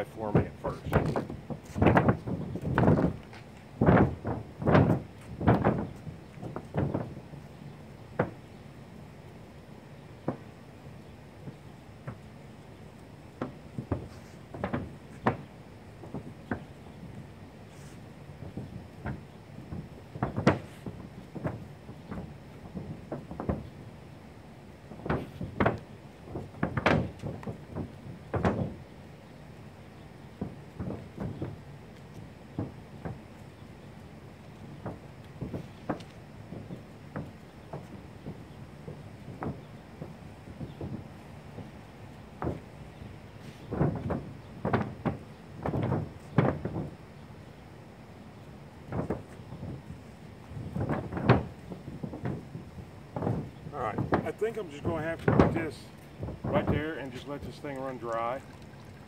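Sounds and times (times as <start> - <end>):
paint roller knocking on metal roof: 0.3 - 3.2, 3.8 - 7.2, 13.4 - 16.7, 18.4 - 23.8, 24.9 - 28.8, 32.5 - 33.2, 34.8 - 41.7, 43.4 - 47.0, 50.6 - 58.4.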